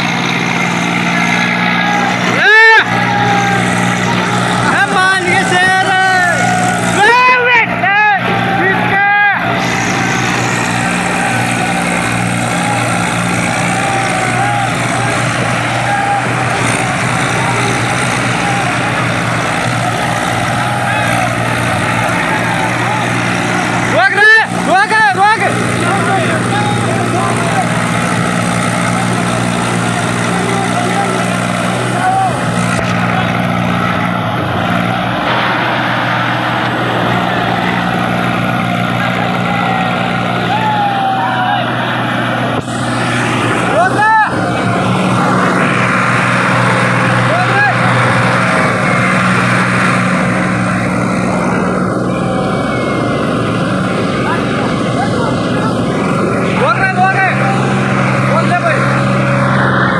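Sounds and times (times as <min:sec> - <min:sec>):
people shouting: 0:00.0 - 0:59.9
tractor diesel engines under load: 0:00.0 - 0:59.9.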